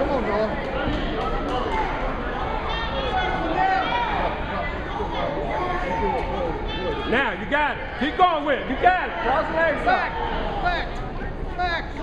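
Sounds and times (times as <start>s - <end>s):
voices echoing in a gym: 0.0s - 12.0s.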